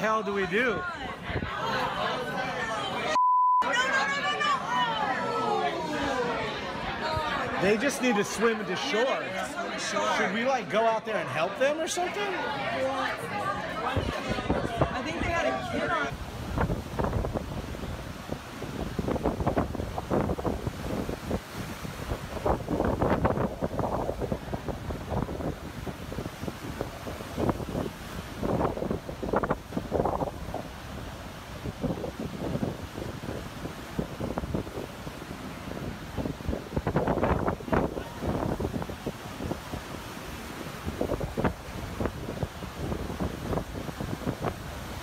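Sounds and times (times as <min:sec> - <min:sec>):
heavy surf breaking: 0:00.0 - 0:45.0
wind buffeting microphone: 0:13.4 - 0:45.0.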